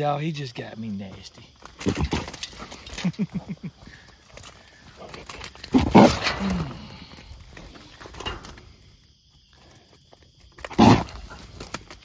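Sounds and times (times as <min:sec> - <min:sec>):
hog grunting: 0:05.0 - 0:07.2, 0:10.6 - 0:11.5.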